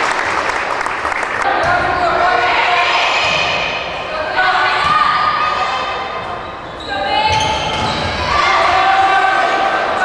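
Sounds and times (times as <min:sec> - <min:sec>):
voices shouting and cheering: 0:01.4 - 0:10.0.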